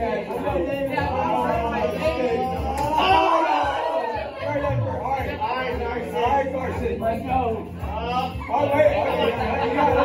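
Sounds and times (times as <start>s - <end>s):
music playing: 0.0s - 10.0s
teenagers chattering: 0.0s - 10.0s.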